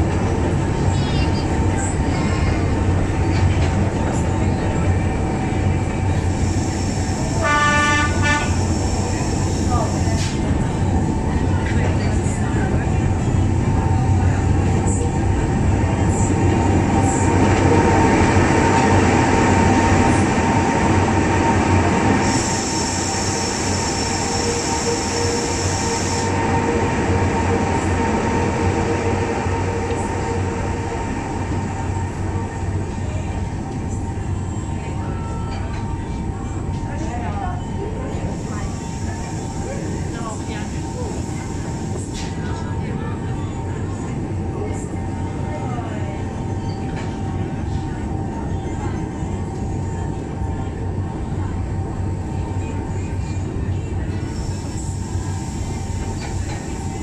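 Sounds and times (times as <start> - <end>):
railway car running hum: 0.0 - 57.0.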